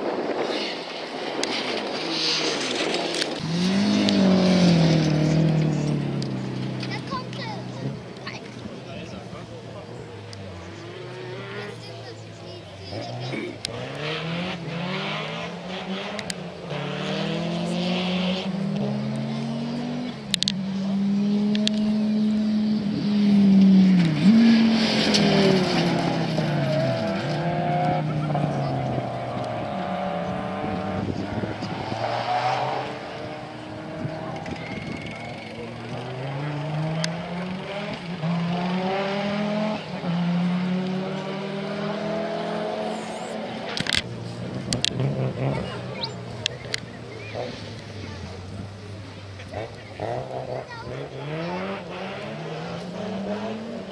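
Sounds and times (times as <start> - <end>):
rally car engines revving: 0.0 - 53.9.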